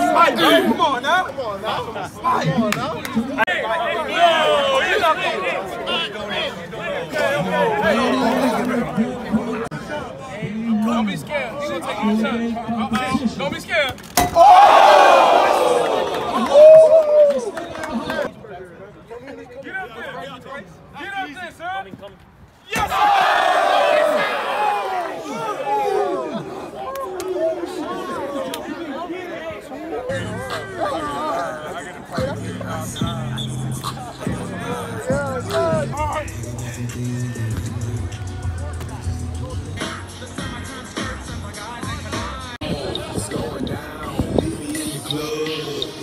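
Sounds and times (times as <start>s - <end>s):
young men chattering: 0.0s - 13.9s, 17.4s - 22.0s, 23.1s - 46.0s.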